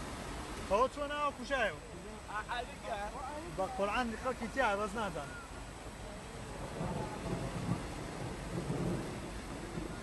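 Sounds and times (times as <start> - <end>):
floodwater rushing: 0.0 - 10.0.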